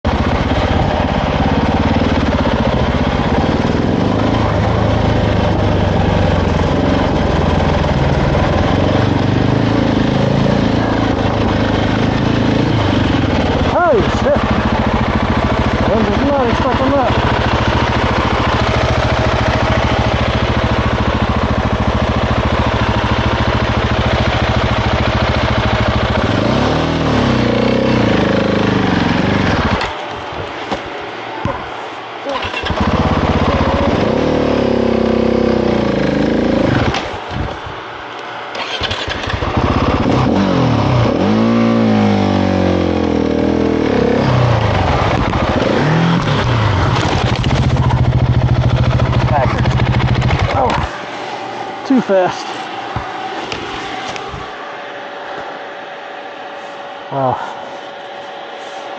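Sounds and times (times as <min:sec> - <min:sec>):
motorcycle engine idling and revving: 0:00.0 - 0:58.9.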